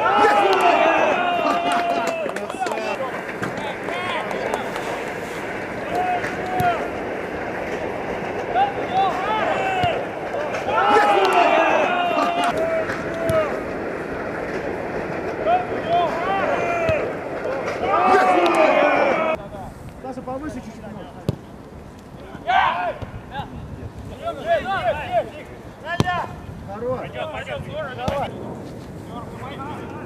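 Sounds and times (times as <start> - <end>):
players shouting: 0.0 - 19.4, 22.2 - 23.1.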